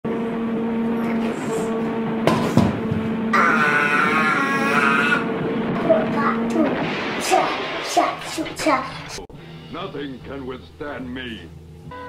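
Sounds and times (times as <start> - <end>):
child buzzing lips engine noise: 0.1 - 6.7.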